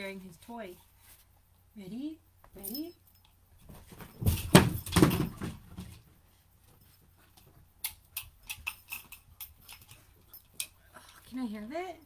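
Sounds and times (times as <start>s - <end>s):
puppy scuffling with thumps: 3.6s - 7.7s.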